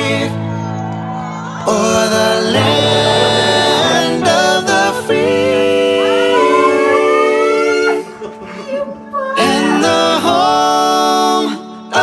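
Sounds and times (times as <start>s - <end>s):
background music chords: 0.0s - 12.0s.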